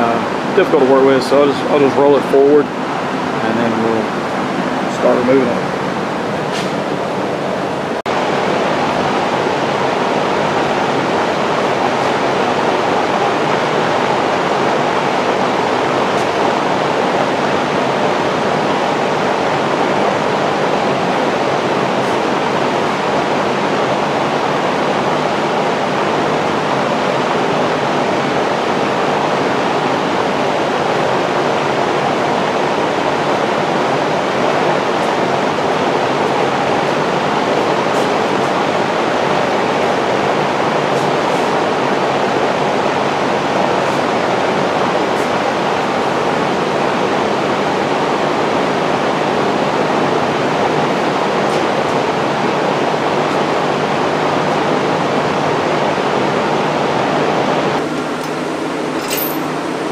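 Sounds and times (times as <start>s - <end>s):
fan running: 0.0s - 59.9s.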